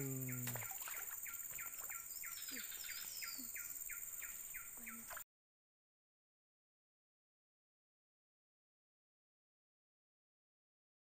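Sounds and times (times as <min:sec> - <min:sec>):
high-pitched insect drone: 0:00.0 - 0:01.2.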